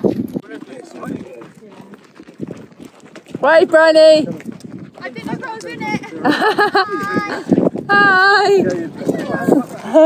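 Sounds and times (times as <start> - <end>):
camel footfalls on sand: 0.0 - 6.0
indistinct voices talking: 0.3 - 10.0.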